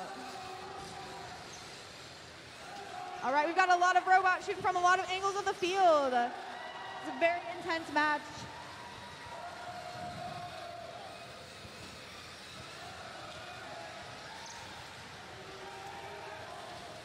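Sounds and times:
spectators in stands: 0.0 - 17.0.

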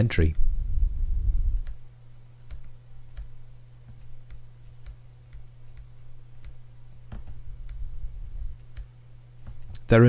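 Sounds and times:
low electrical hum: 0.0 - 10.0
stylus tapping on tablet screen: 1.6 - 9.9.

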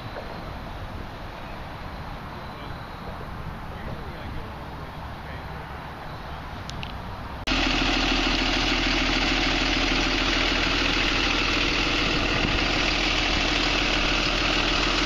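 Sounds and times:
bus engine idling: 0.0 - 15.0.

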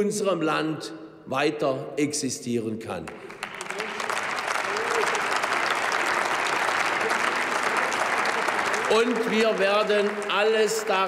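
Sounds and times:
applause in a large chamber: 2.9 - 11.0.

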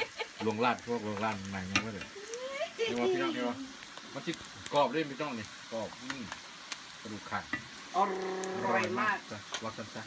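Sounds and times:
meat sizzling in hot oil: 0.0 - 10.0.

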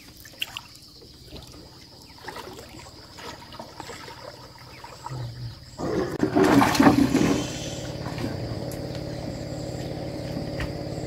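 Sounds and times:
rush of sloshing water: 0.0 - 9.0
water lapping around a boat: 0.0 - 11.0
low motor hum: 5.1 - 11.0.

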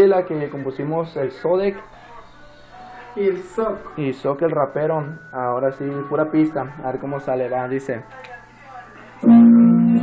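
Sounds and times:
instrumental backing track: 2.2 - 10.0.

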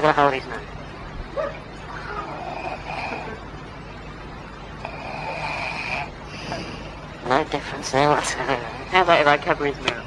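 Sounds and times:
man snoring with whistle: 2.2 - 3.4, 4.8 - 6.9.

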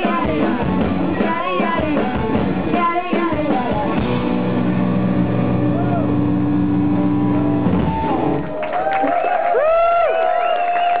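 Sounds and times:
rock band final chord: 3.9 - 8.4
audience cheering and whistling: 5.7 - 11.0.

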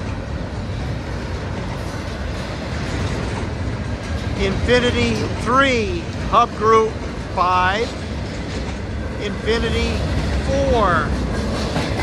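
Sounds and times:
train wheels rolling on rails: 0.0 - 12.0.

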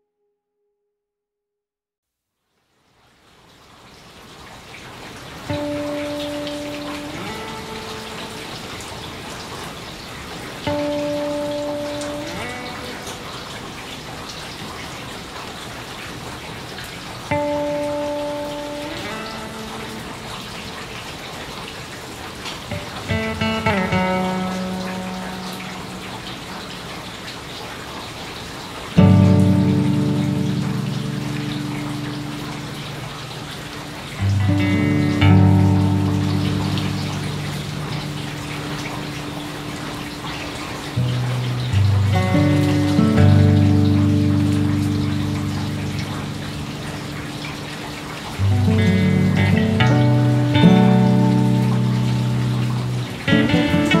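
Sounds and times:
acoustic guitar chords: 5.5 - 8.8, 10.7 - 13.5, 17.3 - 20.4, 22.7 - 26.7, 29.0 - 33.3, 34.1 - 47.7, 48.3 - 54.0.

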